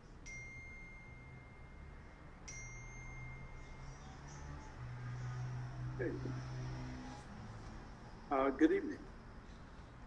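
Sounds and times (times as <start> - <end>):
bell-like chime ringing: 0.2 - 4.3.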